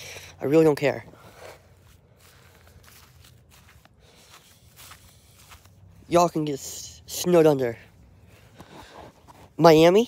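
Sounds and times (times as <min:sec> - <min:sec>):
faint footsteps: 0:00.0 - 0:09.6.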